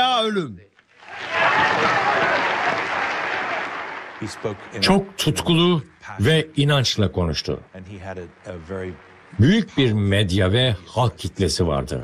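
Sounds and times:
audience applauding: 0.9s - 5.6s, 7.8s - 10.3s.

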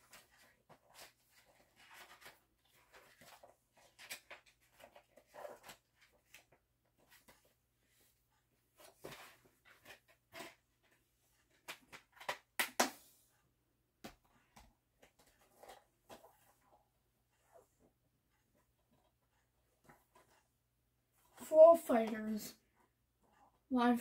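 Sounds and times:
paper rustling: 0.0s - 7.5s.

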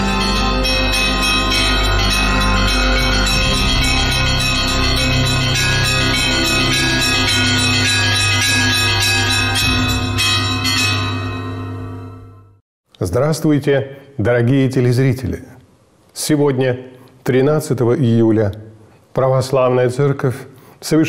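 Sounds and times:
theme music with bell ringing: 0.0s - 12.6s.

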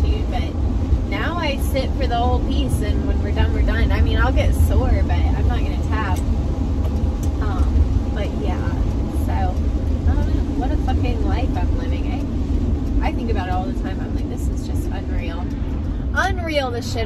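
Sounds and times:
woman talking: 0.0s - 0.5s, 1.1s - 6.2s, 7.4s - 12.2s, 13.0s - 17.0s
van engine and road rumble: 0.0s - 17.0s.

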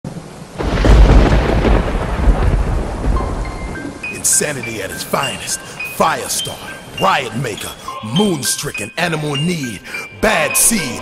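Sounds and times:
rain-like hiss: 0.1s - 8.8s
thunder clap with rumble: 0.6s - 4.1s.

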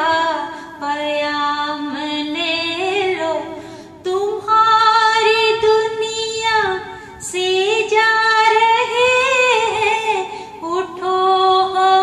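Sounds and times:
woman singing unaccompanied: 0.0s - 12.0s
singer breathing: 3.4s - 4.1s, 10.2s - 10.6s.

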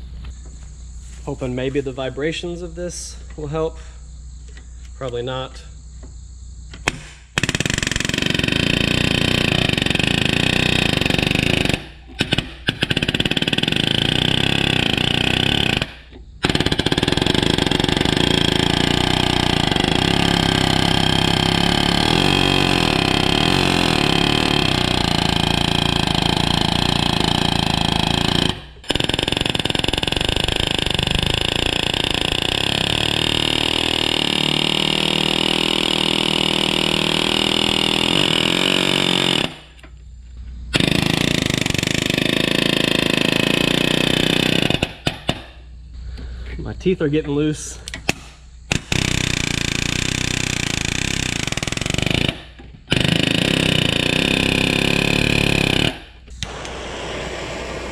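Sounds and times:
pneumatic nailer hammering metal: 6.7s - 40.0s, 40.7s - 45.6s, 47.9s - 57.9s.

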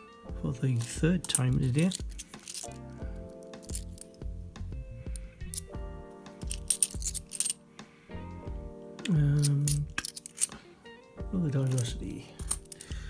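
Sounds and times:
background music with steady beat: 0.0s - 13.0s
coins clinking together: 0.8s - 2.8s, 3.6s - 4.1s, 6.4s - 7.6s, 9.4s - 10.6s, 12.4s - 13.0s.

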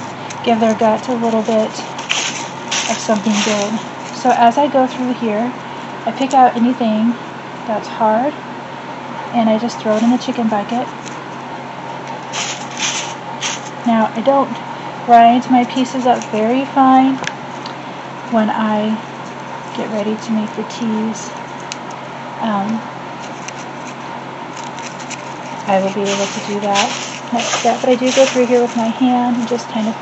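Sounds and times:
leaves crunching: 0.0s - 4.3s, 12.1s - 13.9s, 24.6s - 29.7s
dry leaves rustling on paper: 0.0s - 5.5s, 9.8s - 11.4s, 12.0s - 17.0s, 22.7s - 30.0s.

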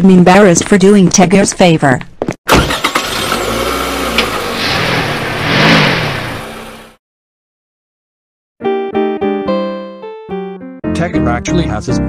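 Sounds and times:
car engine accelerating: 2.5s - 7.0s.

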